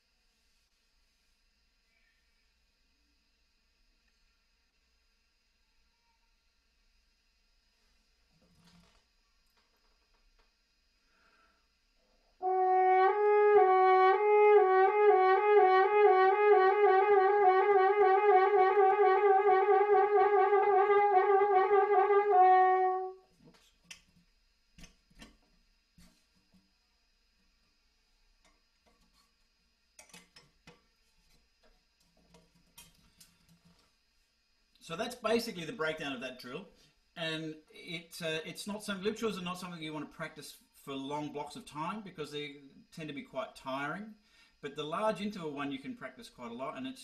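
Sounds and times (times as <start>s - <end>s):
french horn lip trill: 12.4s - 23.2s.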